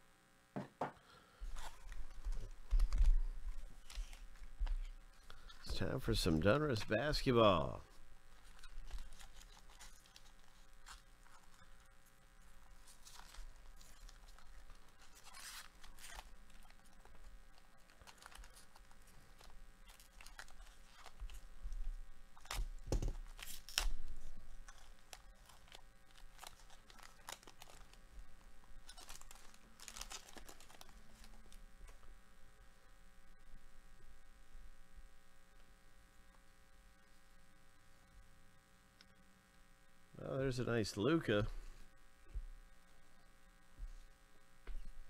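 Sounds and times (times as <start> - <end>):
foil wrappers tearing and crinkling: 1.4 - 7.6, 8.3 - 28.0, 28.7 - 31.6.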